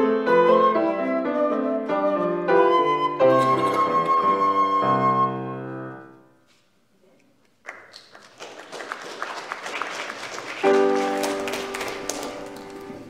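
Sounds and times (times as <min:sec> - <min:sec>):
congregation applauding: 0:07.6 - 0:13.0.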